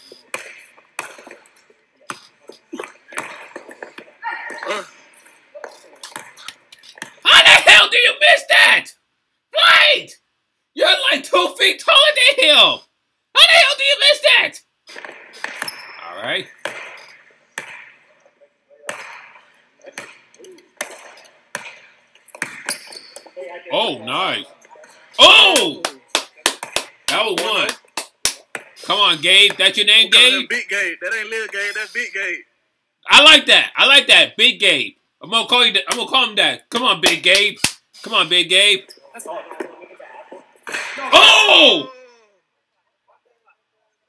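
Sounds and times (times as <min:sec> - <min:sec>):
man exclaiming loudly: 0:07.3 - 0:09.0, 0:09.6 - 0:10.2, 0:10.8 - 0:12.8, 0:13.4 - 0:14.6, 0:25.2 - 0:26.0, 0:41.0 - 0:42.2
basketball bouncing on court floor: 0:16.6 - 0:18.0, 0:18.9 - 0:23.3.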